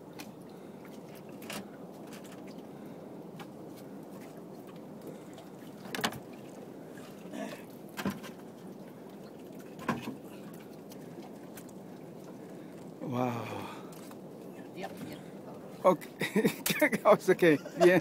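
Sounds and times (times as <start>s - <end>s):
sea water rushing: 0.0s - 18.0s
wind: 0.0s - 18.0s
sharp knocks in a boat: 5.8s - 6.3s, 8.0s - 8.4s, 9.8s - 10.2s.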